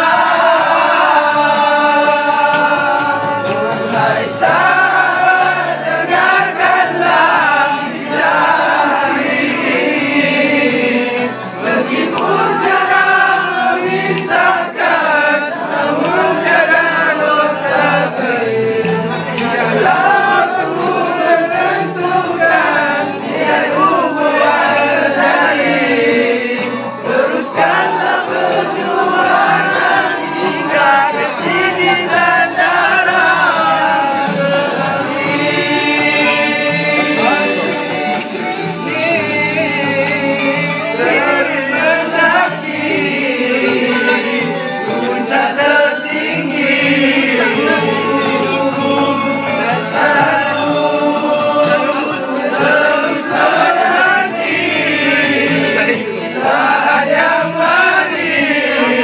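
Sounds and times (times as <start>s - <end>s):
group of young men singing: 0.0s - 59.0s.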